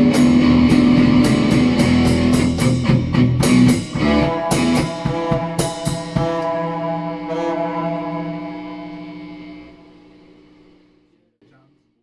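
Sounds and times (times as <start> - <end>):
held rock guitar note: 0.0 - 11.0.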